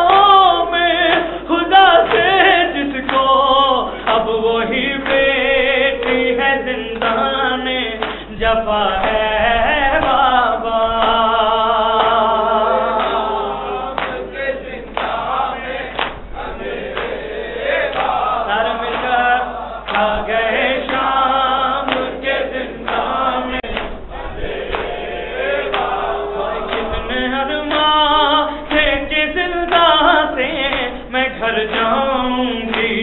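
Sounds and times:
man singing a lament into a microphone: 0.0s - 15.7s, 17.9s - 24.0s, 25.6s - 33.0s
group of men singing along: 0.0s - 33.0s
hands slapping chests: 14.0s - 14.2s, 15.9s - 16.3s.

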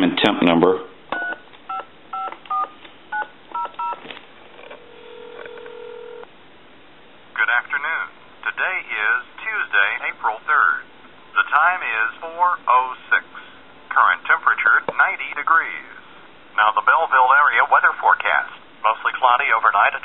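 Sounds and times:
recorded announcement speaking: 0.0s - 1.0s, 7.3s - 20.0s
touch-tone keypad dialing: 1.2s - 4.0s.

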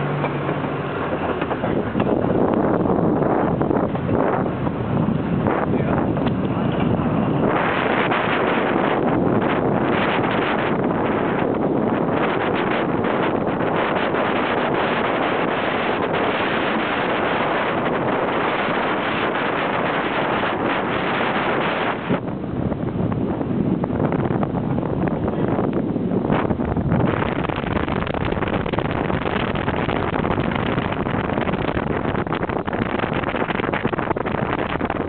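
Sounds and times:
road noise: 0.0s - 35.0s
wind rushing over microphone: 0.0s - 35.0s.

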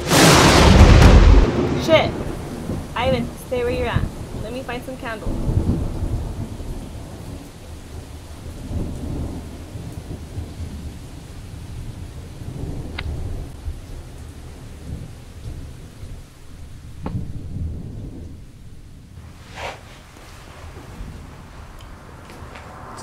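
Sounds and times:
rolling thunder: 0.0s - 19.4s, 20.4s - 23.0s
steady rain: 0.0s - 23.0s.

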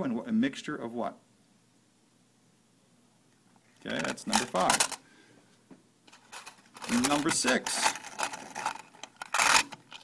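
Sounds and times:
man's voice: 6.8s - 8.0s.

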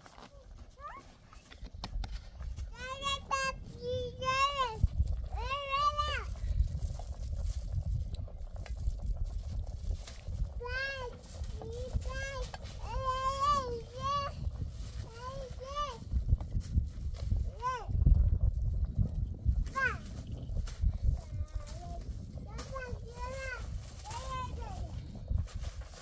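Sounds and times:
wind rumble on microphone: 0.0s - 26.0s
toddler babbling and calling: 0.3s - 1.2s, 2.7s - 6.3s, 10.6s - 14.4s, 15.0s - 16.0s, 21.2s - 25.0s.

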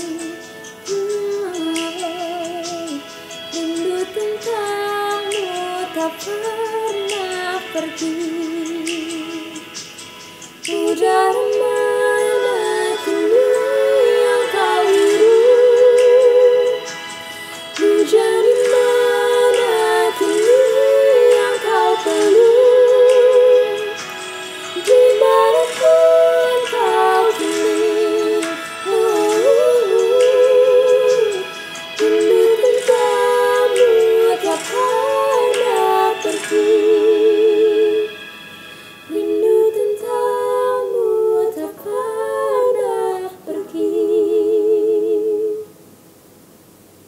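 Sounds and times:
women singing in harmony: 0.0s - 10.0s, 10.6s - 45.8s.

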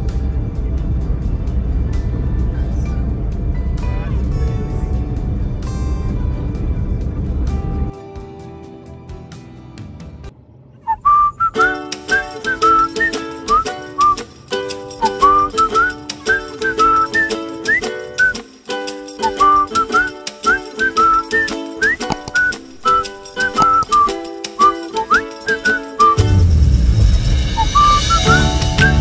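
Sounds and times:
whistled melody: 10.8s - 26.6s, 27.5s - 29.0s
rhythmic chordal accompaniment: 11.6s - 26.5s, 27.6s - 29.0s.

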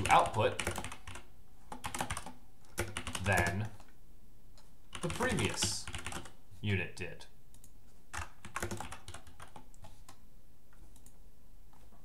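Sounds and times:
computer keyboard typing: 0.0s - 4.0s, 4.6s - 6.4s, 7.5s - 10.2s.

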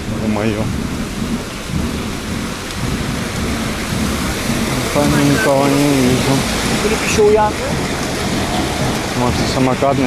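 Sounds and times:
fountain water splashing: 0.0s - 10.0s
low rumble: 0.0s - 10.0s.

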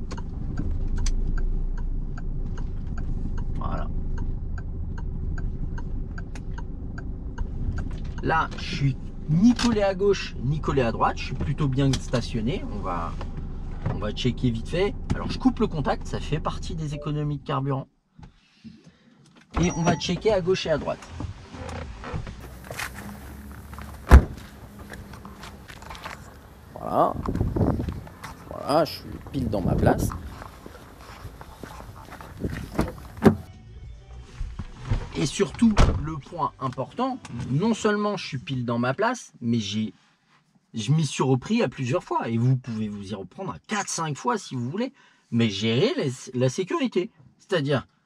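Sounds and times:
turn signal ticking: 0.0s - 8.7s, 22.4s - 33.5s
car engine humming: 0.0s - 17.2s, 20.2s - 33.5s
car door shutting: 19.6s - 28.5s, 30.2s - 33.5s, 34.9s - 36.1s
faint shuffling: 21.8s - 33.5s.

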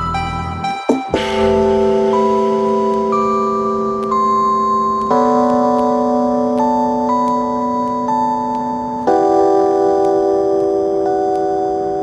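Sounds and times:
slow dark instrumental music: 0.0s - 12.0s.

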